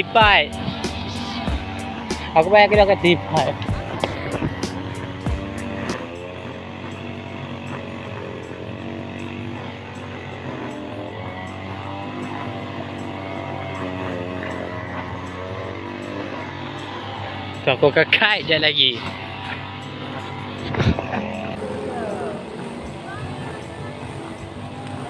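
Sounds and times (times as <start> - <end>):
brush cutter engine running: 0.0 - 25.0.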